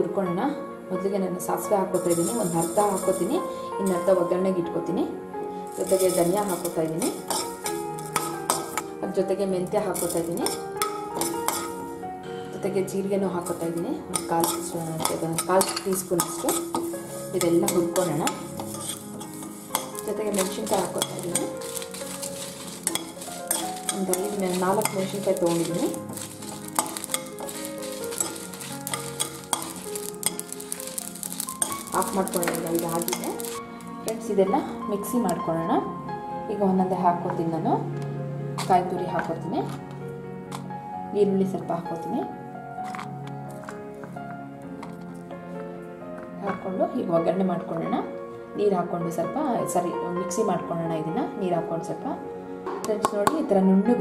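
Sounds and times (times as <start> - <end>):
background music: 0.0 - 54.0
light sizzle: 1.9 - 4.3, 5.4 - 12.0, 13.3 - 35.4
seeds rattling into a pan: 2.0 - 3.3, 5.7 - 8.8, 14.2 - 34.2.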